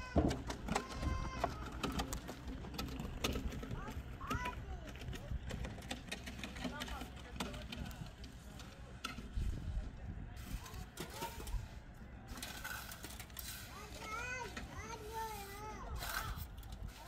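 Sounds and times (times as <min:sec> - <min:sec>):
faint voices talking: 0:00.0 - 0:17.0.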